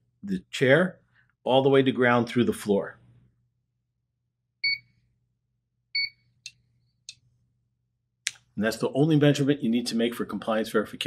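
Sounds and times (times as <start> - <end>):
short high beeps: 4.6 - 4.9.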